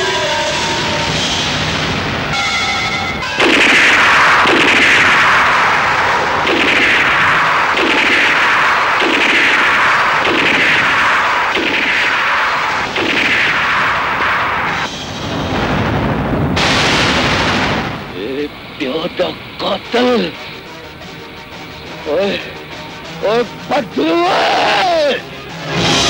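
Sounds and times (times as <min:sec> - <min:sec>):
film soundtrack music: 0:00.0 - 0:26.0
blast sound effects: 0:03.3 - 0:18.3.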